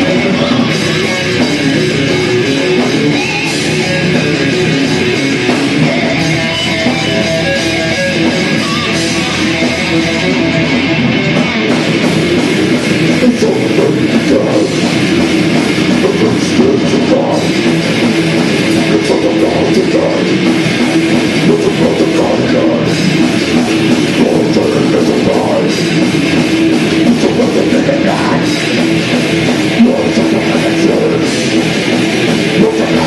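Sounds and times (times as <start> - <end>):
distorted electric guitar: 0.0 - 33.0
drum kit: 0.0 - 33.0
electric bass: 0.0 - 33.0.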